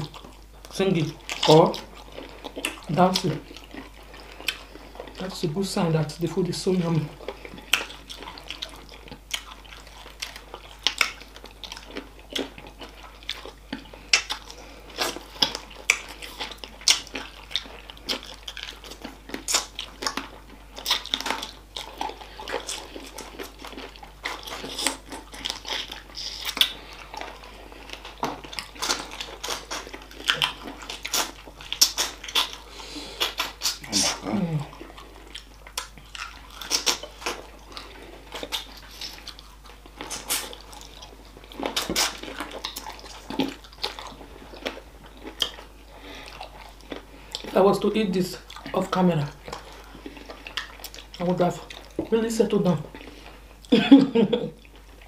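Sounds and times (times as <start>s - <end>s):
wet chewing and sucking: 0.0s - 53.8s.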